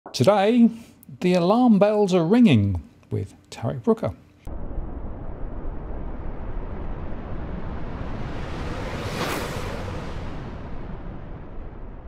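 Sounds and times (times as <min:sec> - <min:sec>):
deep rumble: 0:04.5 - 0:12.0
rushing whoosh: 0:05.1 - 0:12.0.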